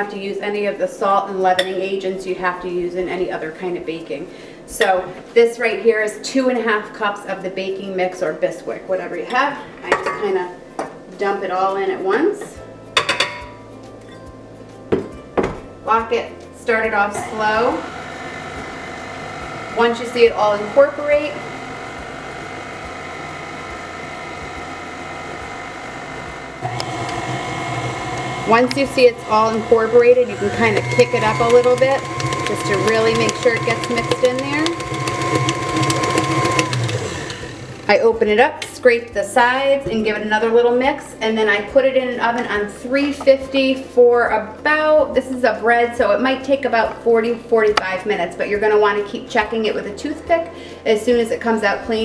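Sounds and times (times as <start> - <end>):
beater in thick batter: 17.1 - 38.0
stand mixer running: 17.1 - 38.0.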